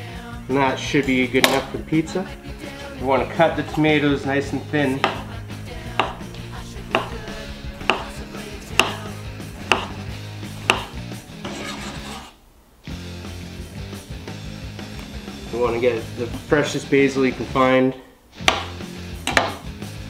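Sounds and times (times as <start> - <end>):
knife slicing tomato: 4.6 - 12.4
knife knocking on wooden board: 5.0 - 5.3, 5.9 - 9.1, 9.7 - 10.0, 10.6 - 11.0.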